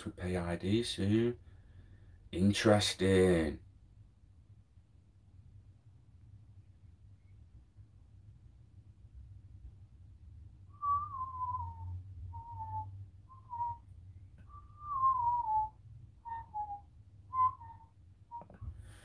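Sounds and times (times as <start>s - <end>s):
person whistling a tune: 10.7s - 13.8s, 14.4s - 18.6s.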